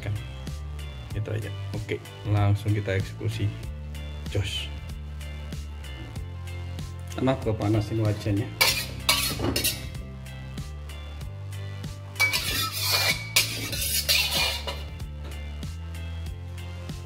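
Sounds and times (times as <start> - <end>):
background music with bass: 0.0 - 17.0
metal spatula scraping a wok: 8.6 - 10.0, 12.2 - 15.0.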